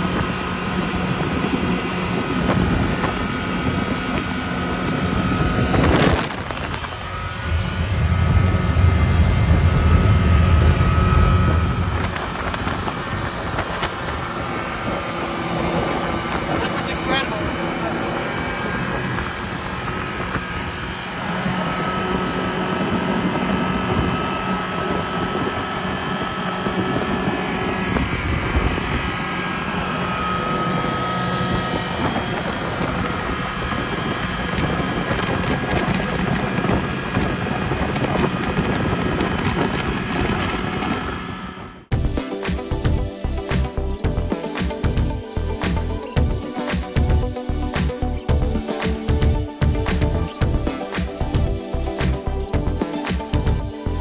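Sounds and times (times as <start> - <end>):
outboard motor running: 0.0 - 54.0
wind noise on microphone: 0.0 - 54.0.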